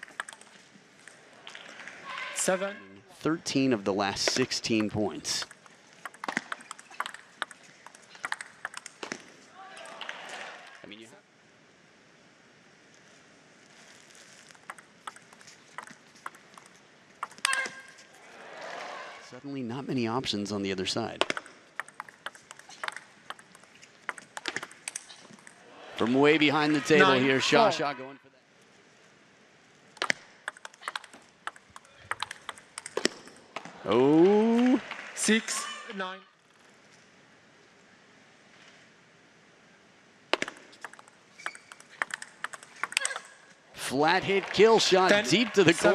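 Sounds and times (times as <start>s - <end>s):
table tennis ball hits: 4.2s - 9.3s, 14.6s - 17.9s, 21.2s - 25.6s, 30.0s - 33.7s, 40.3s - 43.4s
shoe squeak: 41.3s - 41.9s.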